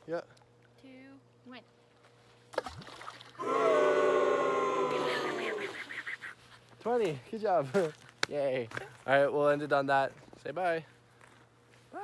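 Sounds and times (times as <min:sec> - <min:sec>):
person crying out in excitement: 0:03.4 - 0:05.9.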